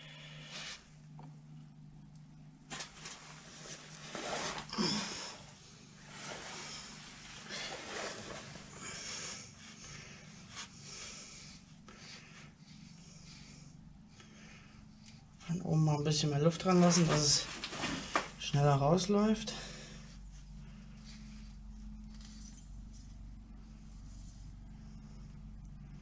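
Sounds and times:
low steady hum: 0.0s - 26.0s
handling noises: 2.6s - 4.8s.

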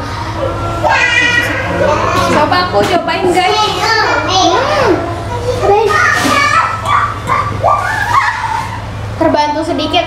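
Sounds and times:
girls chattering: 0.0s - 10.0s
steady low hum: 0.0s - 10.0s.

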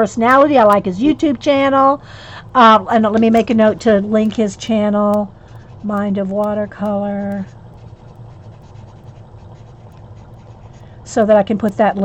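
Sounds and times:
steady low hum: 0.0s - 12.0s
pen scratching on paper: 3.0s - 11.3s.

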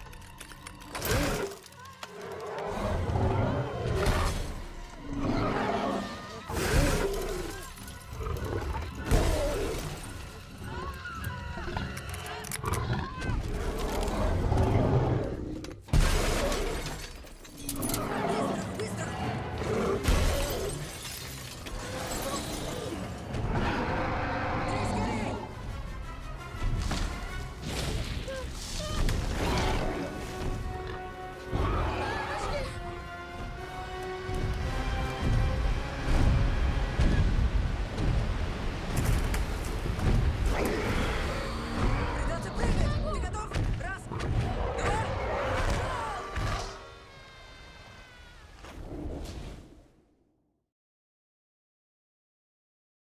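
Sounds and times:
glass shattering: 20.4s - 22.6s
dramatic music: 21.6s - 47.4s
large creature roaring: 40.5s - 42.5s.

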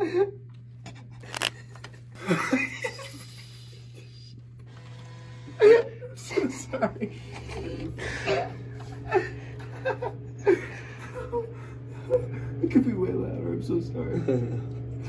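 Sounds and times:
steady low hum: 0.0s - 15.0s
stifled laughter: 2.2s - 4.2s, 5.6s - 12.4s.

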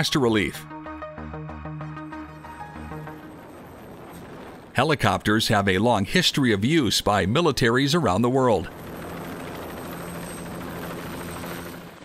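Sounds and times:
helicopter hovering: 0.0s - 12.0s.

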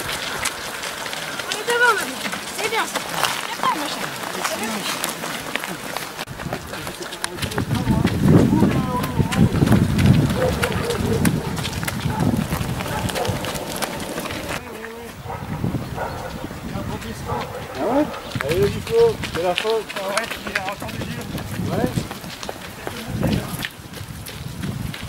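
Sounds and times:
indistinct voices: 0.0s - 23.6s
running footsteps on gravel: 0.0s - 25.0s.

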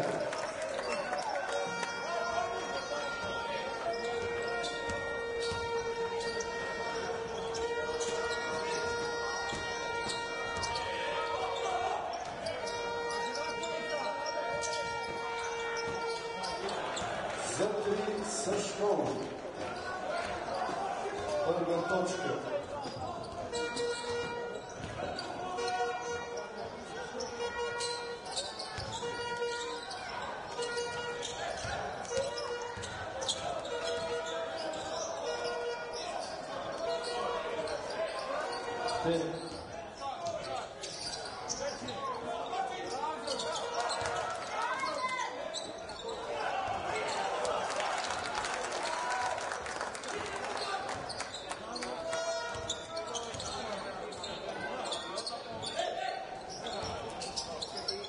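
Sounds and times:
crowd noise: 0.0s - 58.0s.

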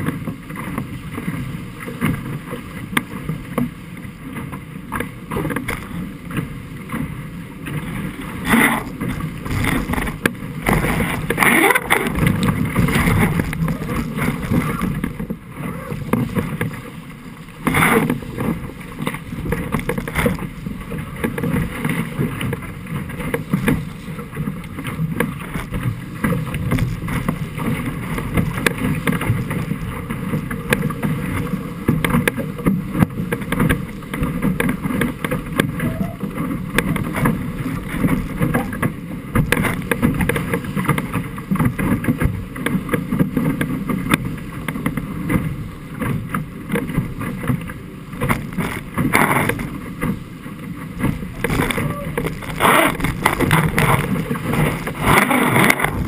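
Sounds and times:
hull rushing through water: 0.0s - 56.0s
water slaps and splashes: 0.0s - 56.0s
wind buffeting microphone: 50.8s - 56.0s.

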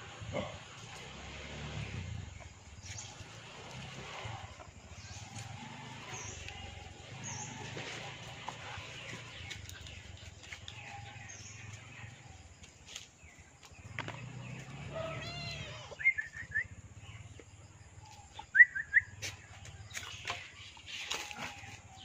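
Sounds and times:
bird chirps: 12.9s - 22.0s
animal cry: 14.7s - 16.5s.

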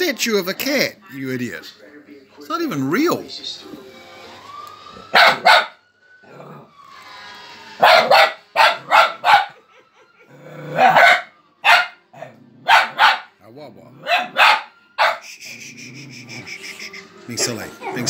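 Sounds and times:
puppy barking: 5.1s - 5.8s, 7.8s - 9.6s, 10.7s - 13.4s, 14.0s - 15.3s, 17.4s - 18.0s
puppy whining: 7.8s - 13.2s, 14.0s - 18.0s.

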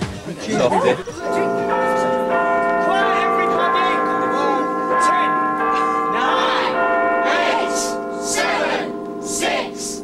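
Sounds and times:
church bells ringing: 0.9s - 10.0s
crowd shouting and cheering: 6.1s - 10.0s.

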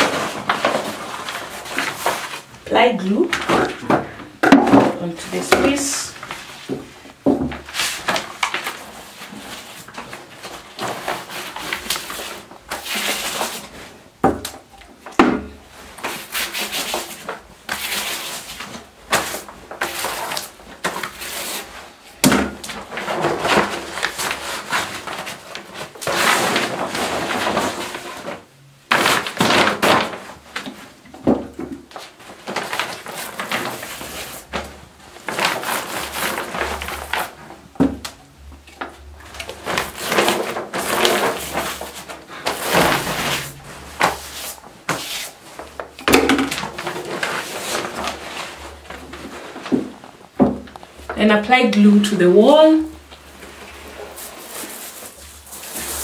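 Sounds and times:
heavy paper rustling and crinkling: 0.0s - 56.0s
paint roller swishing: 7.6s - 14.0s, 15.8s - 22.1s, 39.3s - 50.1s, 53.2s - 56.0s.

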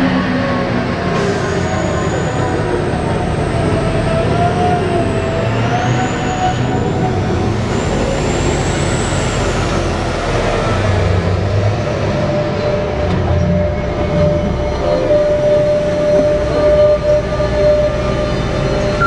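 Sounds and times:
dump truck engine running: 0.0s - 19.0s.

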